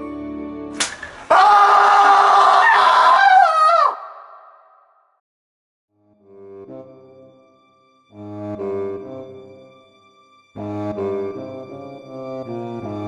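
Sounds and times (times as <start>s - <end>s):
sharp slap hit: 0.8s - 1.3s
long loud cry: 1.2s - 4.7s
soft background music: 6.0s - 13.0s.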